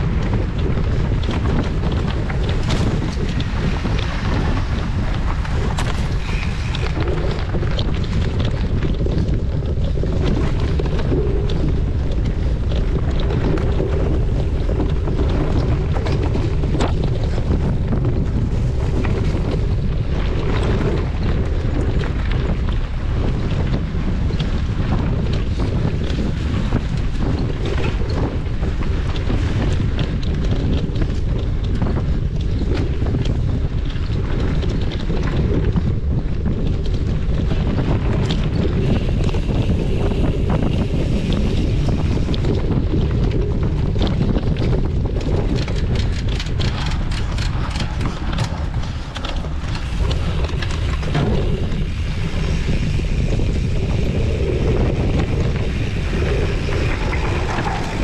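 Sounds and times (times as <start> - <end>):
bike clicks and rattles: 0.0 - 58.0
tyres rumbling on dirt trail: 0.0 - 58.0
wind buffeting microphone: 0.0 - 58.0.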